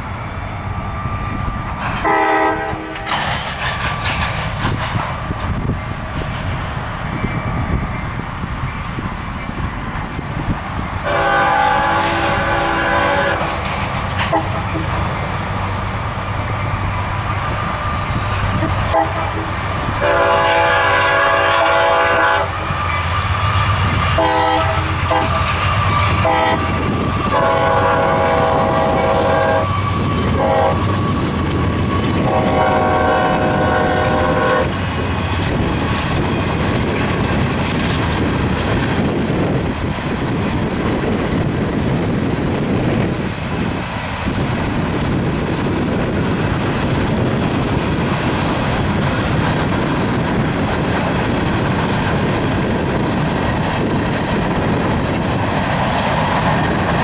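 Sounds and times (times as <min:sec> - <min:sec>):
freight train cars clickety-clack: 0:00.0 - 0:57.0
locomotive horn blasts: 0:02.0 - 0:03.1, 0:11.0 - 0:13.6, 0:14.3 - 0:14.8, 0:18.9 - 0:22.7, 0:24.1 - 0:25.4, 0:26.2 - 0:31.1, 0:32.2 - 0:34.8.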